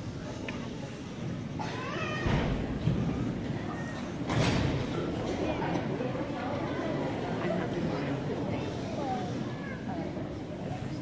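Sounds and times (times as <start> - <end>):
audience murmuring: 0.0 - 11.0.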